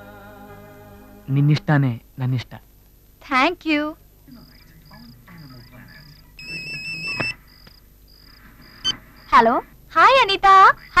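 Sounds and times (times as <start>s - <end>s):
mobile phone beep tone: 4.5s - 7.4s
key-press beep: 6.4s - 7.4s
short high pips: 6.4s - 7.4s.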